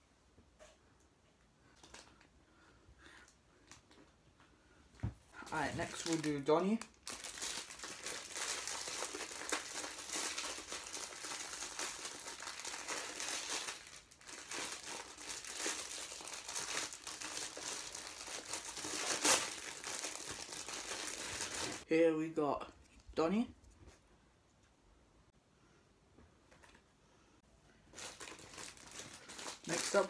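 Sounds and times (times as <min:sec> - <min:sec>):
plastic wrapper crinkling: 0:01.7 - 0:02.3, 0:05.4 - 0:21.8, 0:27.8 - 0:30.0.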